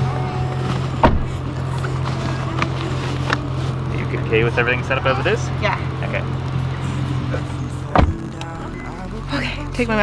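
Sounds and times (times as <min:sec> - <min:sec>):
low hum inside car: 0:00.0 - 0:10.0
car seat buckle click: 0:01.0 - 0:01.3.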